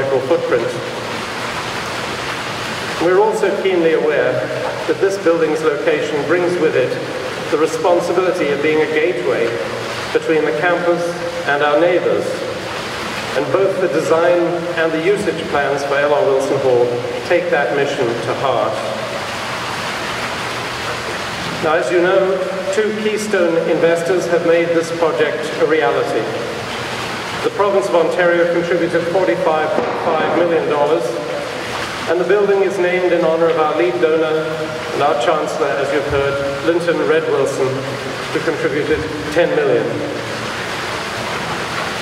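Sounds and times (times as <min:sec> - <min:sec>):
even background hiss: 0:00.0 - 0:42.0.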